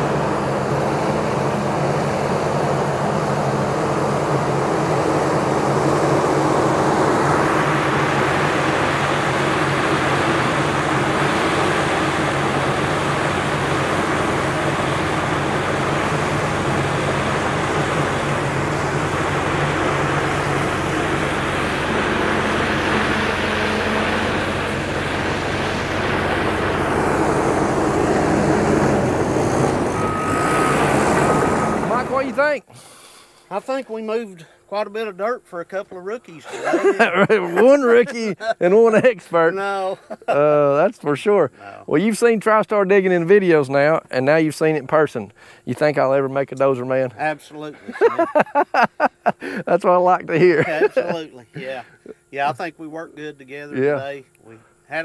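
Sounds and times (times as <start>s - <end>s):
bulldozer track noise: 0.0s - 32.7s
bulldozer diesel engine: 0.0s - 33.6s.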